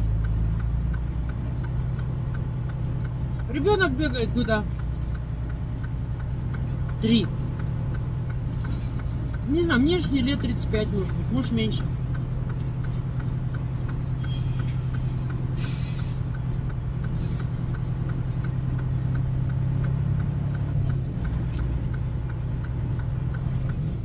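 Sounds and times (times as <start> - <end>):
diesel truck engine idling: 0.0 - 24.0
faint regular ticking: 0.0 - 24.0
brief hiss: 15.6 - 16.2.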